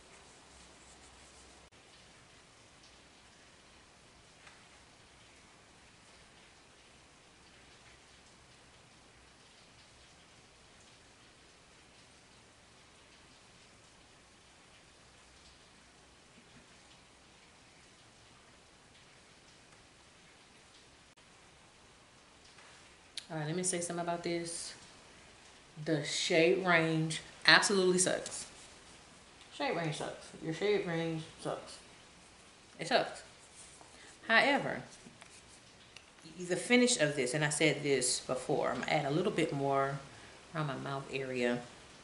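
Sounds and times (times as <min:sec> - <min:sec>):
rain hiss outside: 0:00.0 - 0:42.0.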